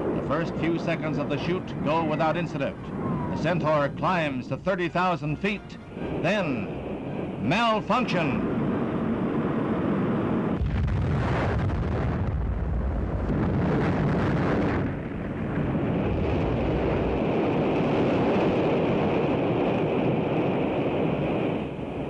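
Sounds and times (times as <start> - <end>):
rocket explosion rumble: 6.0 - 22.0.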